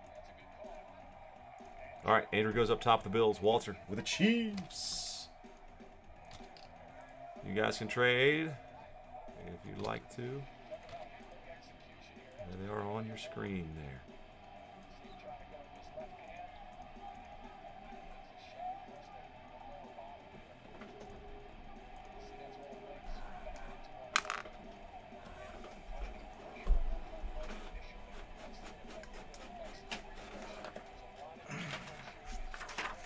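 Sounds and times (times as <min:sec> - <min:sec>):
faint voices: 0:00.0 - 0:33.0
low background music: 0:00.0 - 0:33.0.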